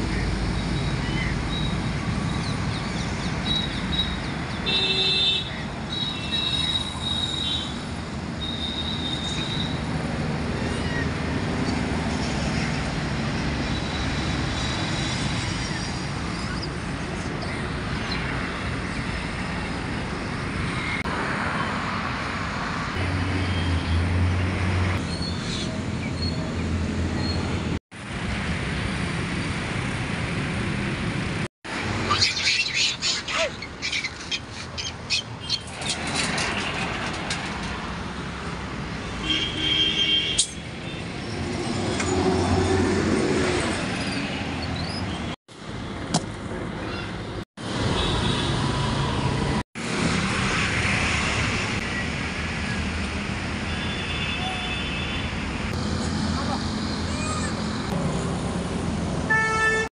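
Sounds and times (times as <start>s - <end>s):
road traffic: 0.0s - 59.9s
birds chirping: 32.0s - 35.8s.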